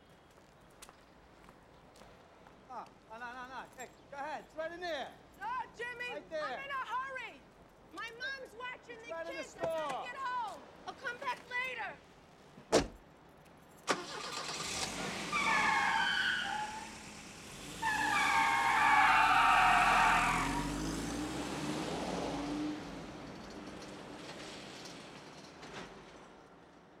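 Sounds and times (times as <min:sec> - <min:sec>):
tires squealing: 0:13.9 - 0:25.4
car engine rumble: 0:13.9 - 0:26.4.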